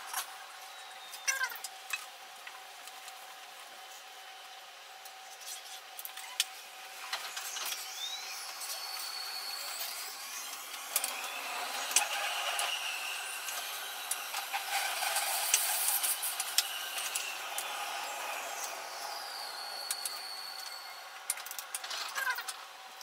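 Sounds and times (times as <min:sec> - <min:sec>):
electric train motors whining: 0:00.0 - 0:23.0
wheels clicking on track: 0:07.1 - 0:22.6.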